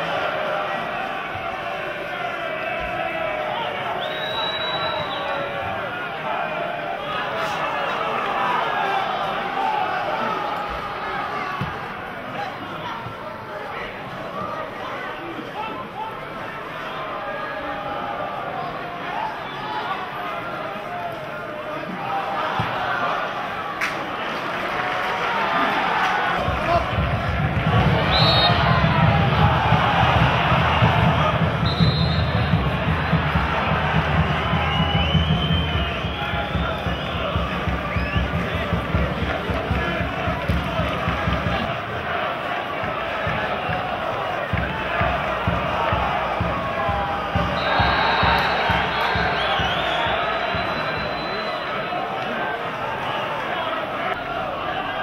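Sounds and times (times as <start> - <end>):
high whistles: 3.8 - 5.6, 28.0 - 28.8, 31.6 - 32.7, 34.4 - 38.4, 47.4 - 52.0
crowd singing and chanting: 25.7 - 55.0.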